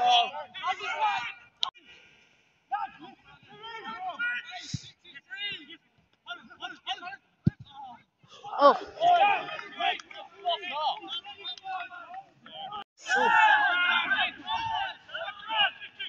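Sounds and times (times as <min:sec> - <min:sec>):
men shouting: 0:13.0 - 0:15.5.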